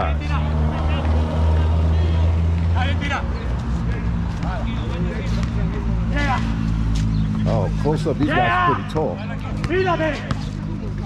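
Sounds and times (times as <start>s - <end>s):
engine humming: 0.0s - 11.0s
people shouting: 8.2s - 9.0s.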